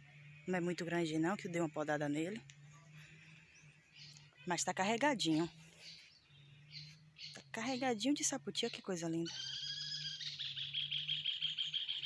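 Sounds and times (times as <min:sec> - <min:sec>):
small birds singing: 0:00.0 - 0:12.0.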